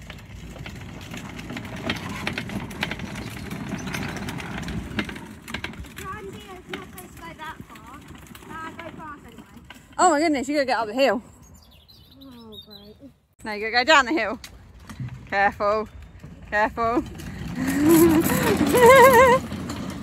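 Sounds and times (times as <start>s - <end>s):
plastic wheels rattling on concrete: 0.0s - 11.2s, 13.6s - 20.0s.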